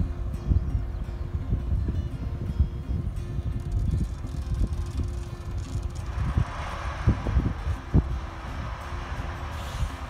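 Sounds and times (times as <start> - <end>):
dragline engine rumble: 0.0 - 10.0
wind buffeting microphone: 0.0 - 10.0
rushing noise: 3.7 - 10.0.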